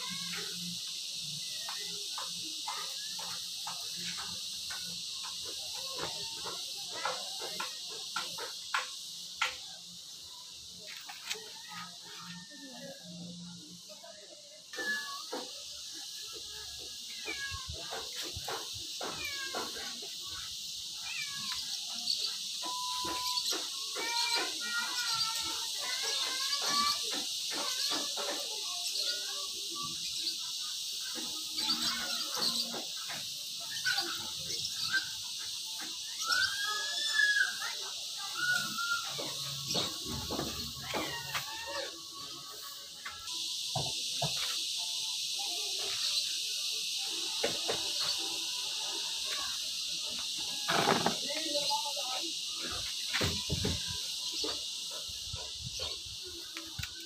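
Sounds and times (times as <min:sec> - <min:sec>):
high insect hum: 0:00.0 - 0:57.0.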